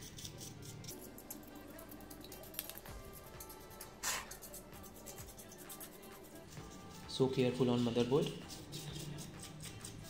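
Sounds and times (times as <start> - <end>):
quiet background music: 0.0 - 10.0
toothbrush scrubbing: 0.0 - 10.0.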